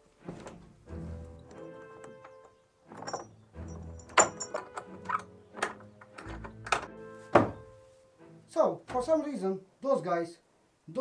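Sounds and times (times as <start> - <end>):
background music sustained tones: 0.0 - 9.5
wooden boards knocking: 5.6 - 7.7.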